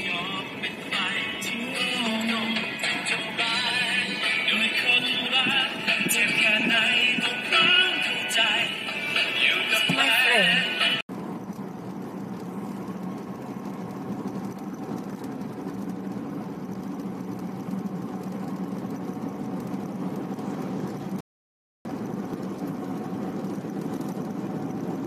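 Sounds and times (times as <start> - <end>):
car engine and tyres droning: 0.0 - 21.2, 21.9 - 25.0.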